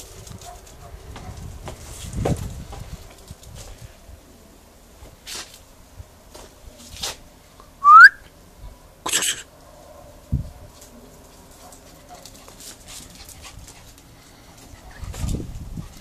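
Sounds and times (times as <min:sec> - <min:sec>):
rising whistle-like call: 0:07.8 - 0:08.3.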